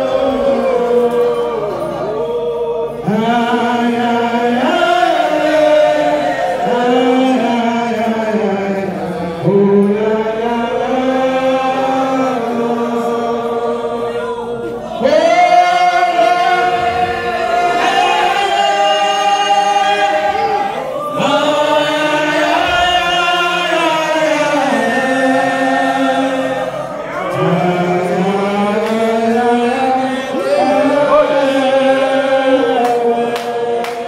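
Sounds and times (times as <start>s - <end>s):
congregation singing: 0.0s - 34.0s.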